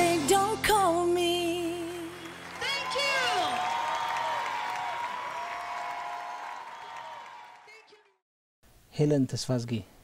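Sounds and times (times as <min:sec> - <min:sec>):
audience applauding: 0:01.7 - 0:08.2.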